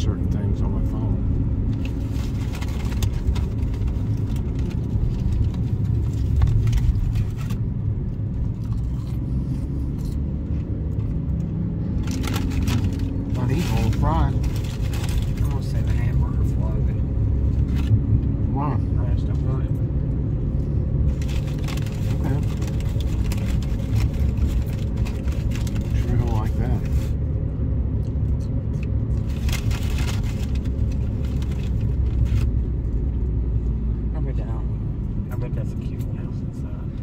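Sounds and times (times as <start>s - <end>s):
car interior road and engine rumble: 0.0s - 37.0s.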